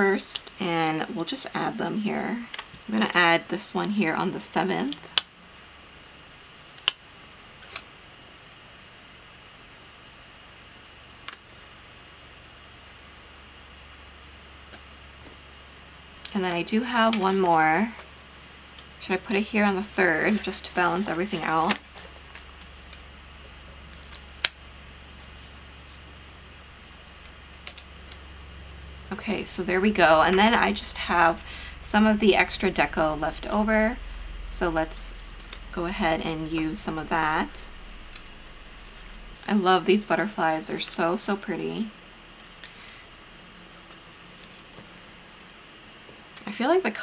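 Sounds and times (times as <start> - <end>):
faint steady hiss: 0.0 - 47.0
low steady hum: 0.0 - 47.0
paper sticker rustle: 16.3 - 18.0, 19.3 - 23.2, 42.4 - 43.0, 43.6 - 45.6.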